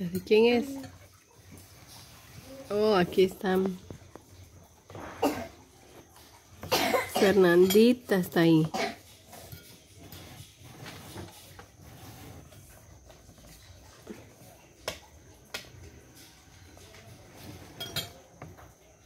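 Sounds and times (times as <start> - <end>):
cutlery clinking on plates: 6.4 - 10.6, 16.4 - 18.8.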